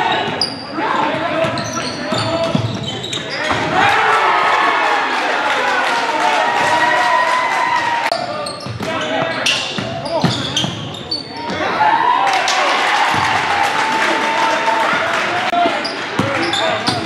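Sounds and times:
sneakers squeaking: 0:00.0 - 0:03.8, 0:08.1 - 0:11.8, 0:15.7 - 0:17.0
people shouting: 0:03.7 - 0:08.4.

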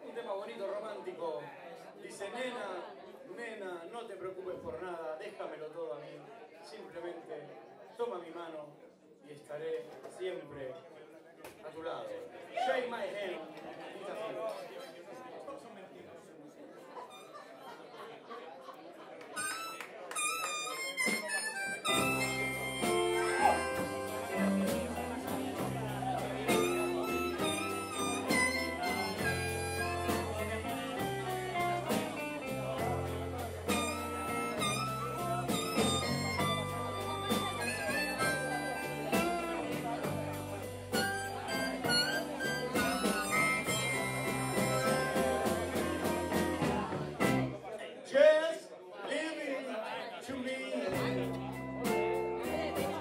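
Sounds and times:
amplified harmonica: 0:19.4 - 0:47.5
blues band playing: 0:19.4 - 0:47.6, 0:50.9 - 0:53.0.

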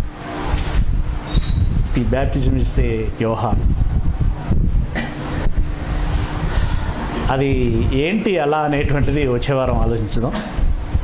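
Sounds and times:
faint steady hum: 0:00.0 - 0:11.0
wind buffeting microphone: 0:00.0 - 0:11.0.

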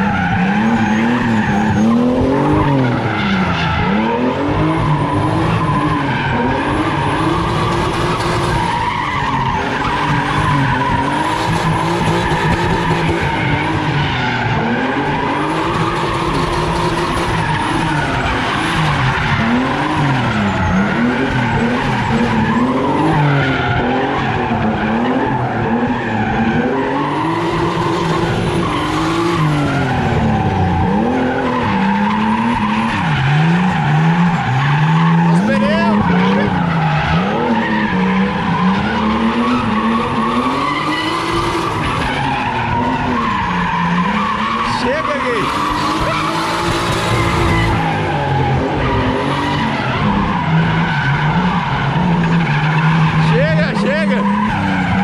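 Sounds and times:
car engine revving: 0:00.0 - 0:55.0
tyres squealing on asphalt: 0:00.0 - 0:55.0.

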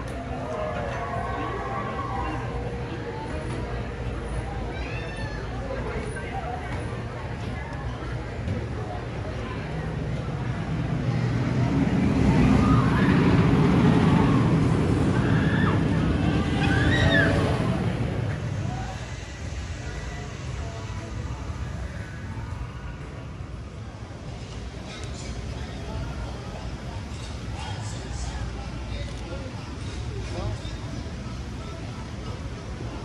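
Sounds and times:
roller coaster rumbling past: 0:00.0 - 0:33.0
riders screaming: 0:14.2 - 0:17.9.

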